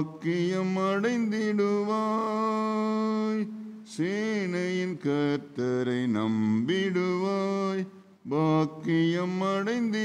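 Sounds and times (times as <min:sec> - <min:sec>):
man singing a hymn: 0:00.0 - 0:10.0.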